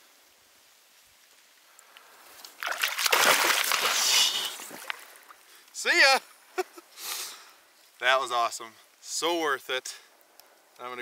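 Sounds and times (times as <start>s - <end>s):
water sloshing and splashing: 2.3s - 5.4s.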